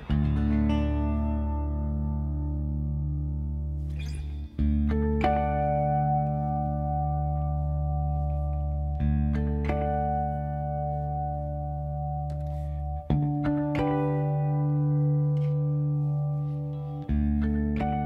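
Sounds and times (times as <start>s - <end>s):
electric guitar chords ringing: 0.0s - 18.0s.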